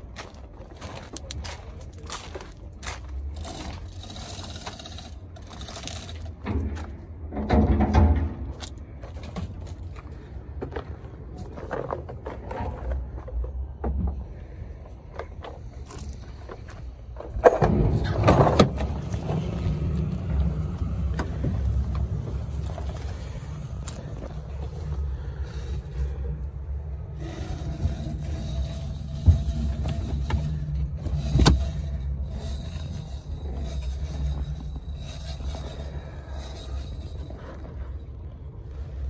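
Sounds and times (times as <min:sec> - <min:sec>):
low rumble: 0:00.0 - 0:39.0
sharp knocks and handling clatter: 0:00.4 - 0:14.3, 0:15.1 - 0:38.4.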